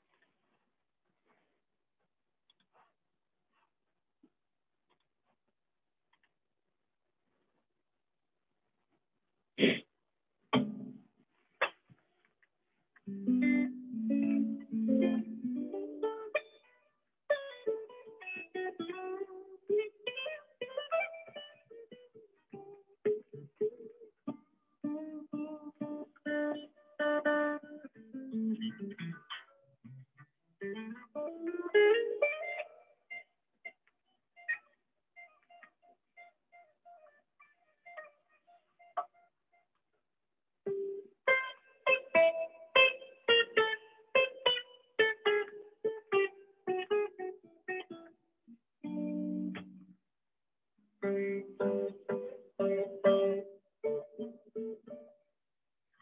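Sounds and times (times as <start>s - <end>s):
electric guitar solo: 13.1s - 33.3s, 40.7s - 48.1s, 48.8s - 49.8s, 51.0s - 55.2s.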